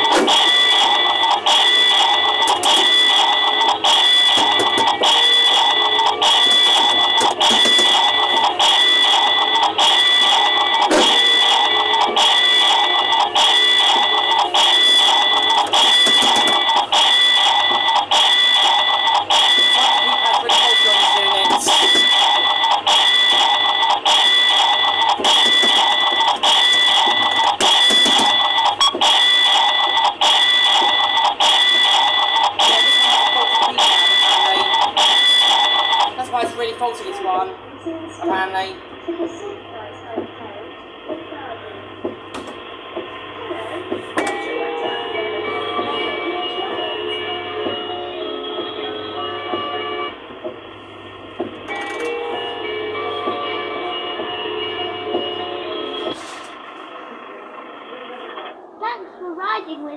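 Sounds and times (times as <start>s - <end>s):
kiddie ride music loop: 0.0s - 37.5s, 43.7s - 50.5s, 51.4s - 56.5s
steady high-pitched tone: 0.0s - 57.5s.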